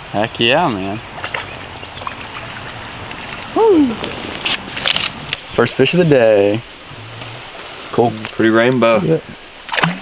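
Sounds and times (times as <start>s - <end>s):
creek water running over riffle: 0.9s - 10.0s.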